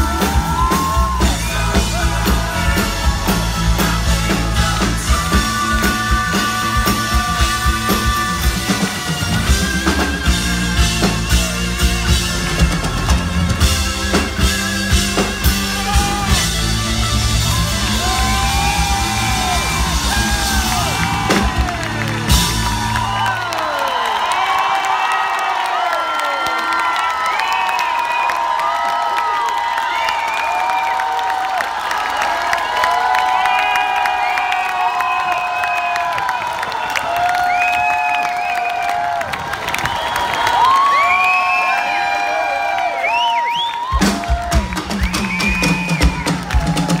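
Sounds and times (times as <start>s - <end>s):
live rock band: 0.0s - 23.6s, 43.7s - 47.0s
crowd cheering and whooping: 0.0s - 47.0s.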